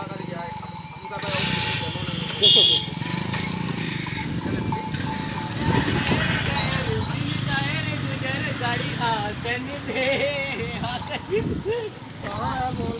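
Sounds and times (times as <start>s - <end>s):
ox hooves clopping: 0.0s - 7.5s
people's voices: 0.0s - 12.9s
wooden cart rattling: 1.2s - 7.4s.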